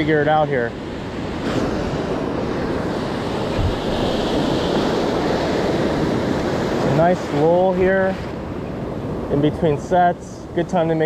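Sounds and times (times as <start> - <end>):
ocean waves breaking: 0.0 - 10.6.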